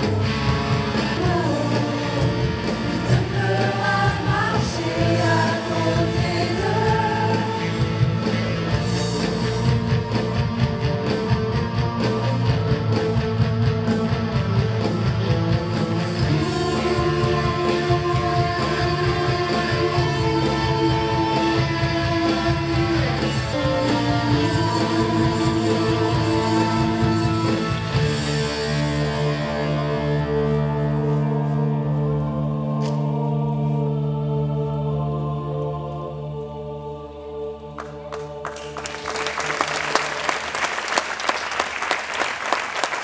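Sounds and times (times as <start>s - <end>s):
live band music: 0.0s - 32.2s
electric guitar: 0.0s - 33.7s.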